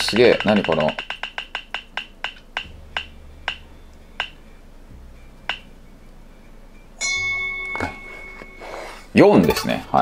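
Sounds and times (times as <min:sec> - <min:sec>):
roulette wheel ticking: 0:00.0 - 0:03.6.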